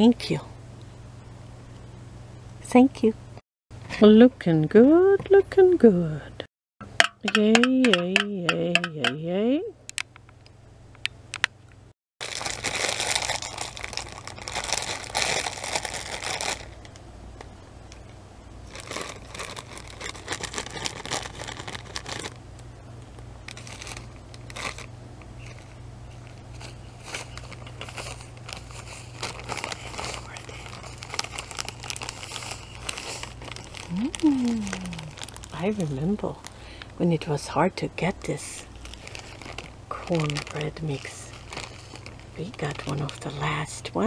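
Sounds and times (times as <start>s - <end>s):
low steady hum: 0.0s - 44.0s
plastic bag crinkling: 12.2s - 17.5s, 18.6s - 22.4s, 23.4s - 37.0s, 38.3s - 43.8s.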